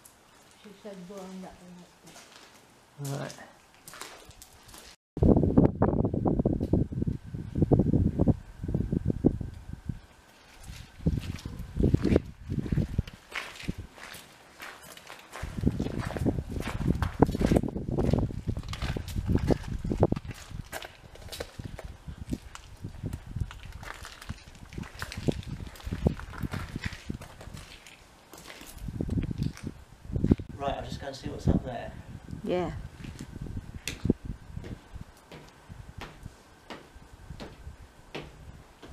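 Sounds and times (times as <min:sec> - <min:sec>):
footsteps crunching on gravel: 0:02.1 - 0:05.0, 0:10.3 - 0:30.4
wind buffeting microphone: 0:05.2 - 0:14.1, 0:15.3 - 0:27.8, 0:28.7 - 0:38.9.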